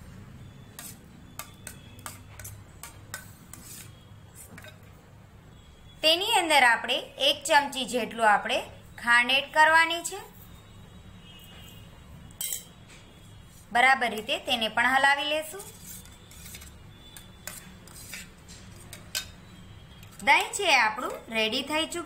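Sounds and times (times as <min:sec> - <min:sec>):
spoon clinking in metal bowl: 0:12.4 - 0:12.8, 0:18.9 - 0:19.4.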